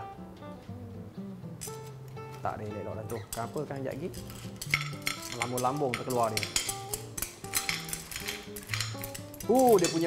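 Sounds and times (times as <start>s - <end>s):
background music with held notes: 0.0s - 10.0s
shells clattering onto a plate: 4.1s - 10.0s.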